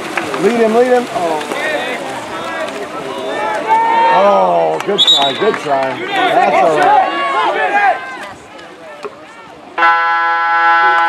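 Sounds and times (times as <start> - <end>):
spectators' voices: 0.0 - 11.0
scoreboard horn buzzing: 9.8 - 11.0.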